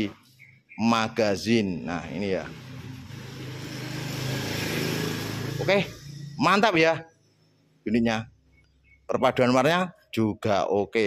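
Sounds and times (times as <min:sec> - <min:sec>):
engine humming: 0:01.8 - 0:06.8.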